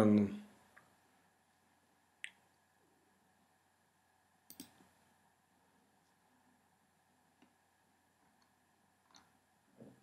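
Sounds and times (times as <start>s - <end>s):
faint computer clicks: 4.5s - 4.8s.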